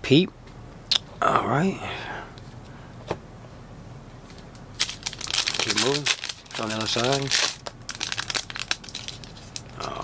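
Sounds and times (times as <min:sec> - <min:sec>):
foil wrapper crinkling: 0:04.8 - 0:09.8.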